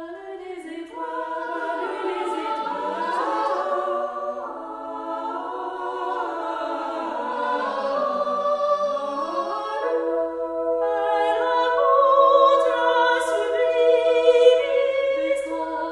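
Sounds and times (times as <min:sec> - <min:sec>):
choral singing: 0:00.0 - 0:15.9.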